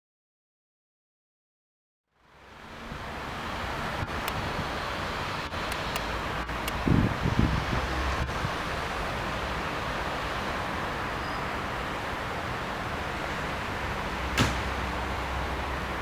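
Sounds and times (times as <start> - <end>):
street ambience: 2.1 - 16.0
wind buffeting microphone: 3.0 - 9.0.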